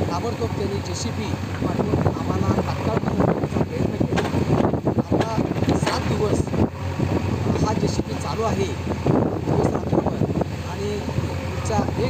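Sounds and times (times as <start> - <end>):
man talking: 0.0 - 4.4, 5.0 - 6.6, 7.4 - 8.8, 9.4 - 12.0.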